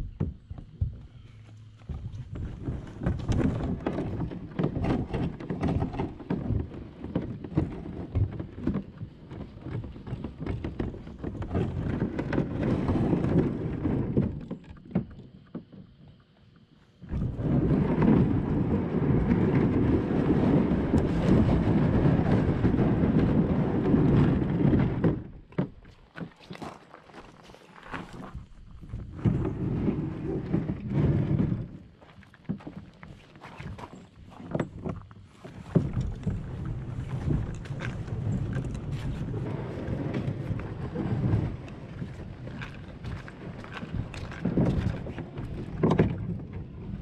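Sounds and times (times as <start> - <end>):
kayak hauled over gravel: 0.0 - 47.0
footsteps crunching on gravel: 25.9 - 28.9.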